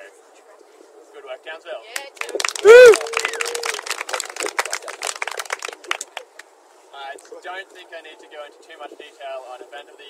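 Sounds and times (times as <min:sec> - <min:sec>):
people clapping: 0:01.9 - 0:06.5.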